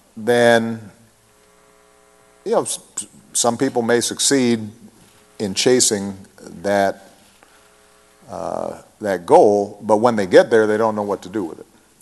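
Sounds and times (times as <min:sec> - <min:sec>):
faint electrical hum: 0:00.0 - 0:12.0
man speaking: 0:00.2 - 0:00.9, 0:02.5 - 0:07.2, 0:08.2 - 0:11.7.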